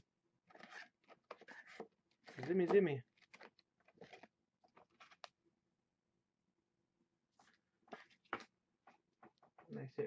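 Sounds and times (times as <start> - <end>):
trading cards rustling: 0.5 - 5.4.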